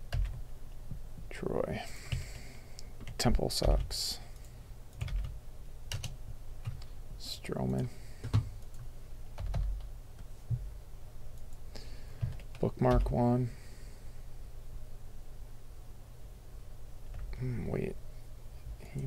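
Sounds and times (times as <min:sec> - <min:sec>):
computer keyboard typing: 0:00.1 - 0:00.4, 0:03.0 - 0:06.9, 0:07.6 - 0:09.9, 0:12.2 - 0:13.2.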